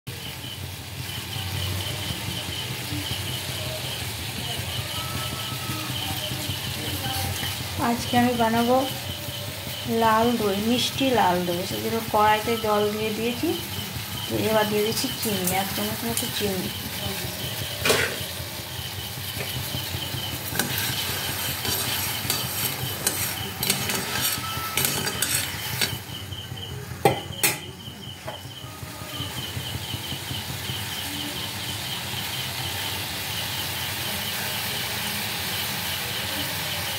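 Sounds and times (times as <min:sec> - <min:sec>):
gas burner hiss and rumble: 0:00.1 - 0:36.9
water sizzling in a wok: 0:00.1 - 0:36.9
metal spatula scraping a pan: 0:17.5 - 0:18.4, 0:19.4 - 0:26.2.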